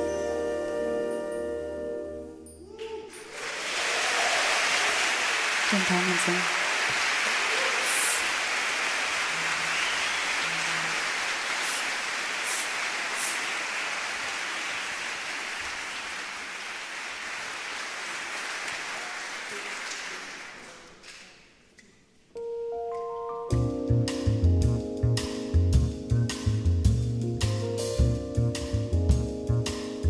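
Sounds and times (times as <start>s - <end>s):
audience applauding: 3.1s - 21.5s.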